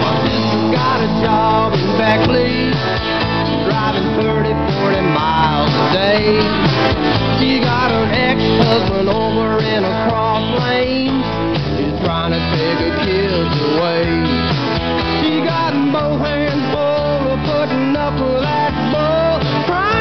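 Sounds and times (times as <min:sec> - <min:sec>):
country-rock band playing: 0:00.0 - 0:20.0
lead guitar bending notes: 0:00.0 - 0:20.0.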